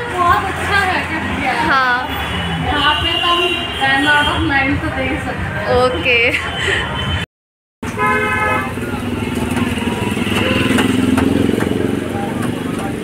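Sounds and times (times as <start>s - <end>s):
traffic noise: 0.0s - 13.0s
vehicle horn toot: 7.8s - 9.0s, 9.8s - 11.2s
motorcycle engine running: 8.7s - 13.0s.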